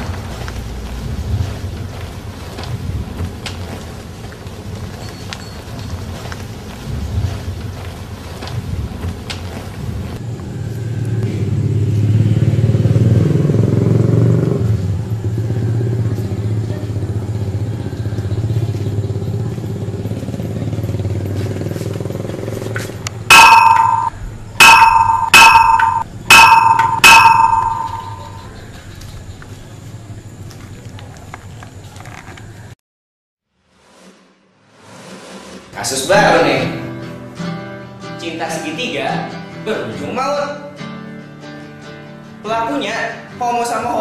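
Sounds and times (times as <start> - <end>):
motorcycle engine running: 0.0 - 24.1
short loud ringing tones: 23.3 - 28.5.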